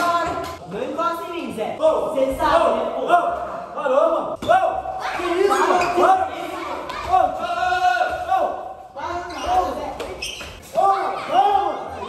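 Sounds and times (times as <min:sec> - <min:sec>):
people shouting and crying: 0:04.4 - 0:08.8, 0:10.6 - 0:12.0.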